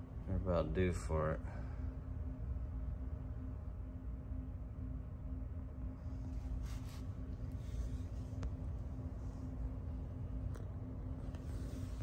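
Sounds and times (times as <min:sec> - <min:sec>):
low equipment hum: 0:00.0 - 0:12.0
faint rustles of handling: 0:06.0 - 0:12.0.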